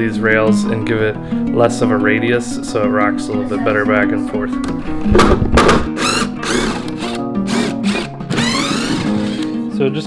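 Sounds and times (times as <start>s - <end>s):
guitar music: 0.0s - 10.0s
power driver driving screws: 5.7s - 9.5s.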